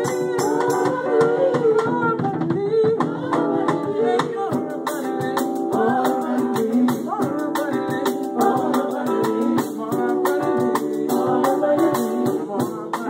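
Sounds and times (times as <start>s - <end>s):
acoustic guitar chords: 0.0s - 13.0s
drum kit: 0.0s - 13.0s
high percussion beat: 0.0s - 13.0s
woman singing: 0.0s - 13.0s.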